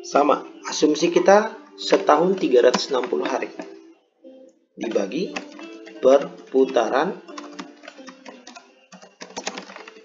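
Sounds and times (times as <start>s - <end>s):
typing on a keyboard: 2.3s - 3.8s, 4.9s - 6.6s, 7.3s - 10.0s.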